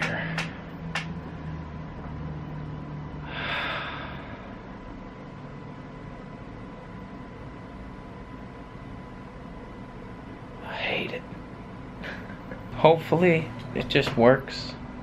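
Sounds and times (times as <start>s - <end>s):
low steady hum: 0.0s - 15.0s
man sighing: 3.2s - 4.5s.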